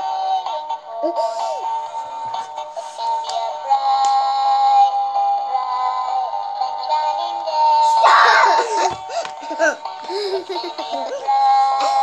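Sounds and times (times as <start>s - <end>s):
synthesized singing voice: 6.8s - 8.9s, 9.5s - 12.0s.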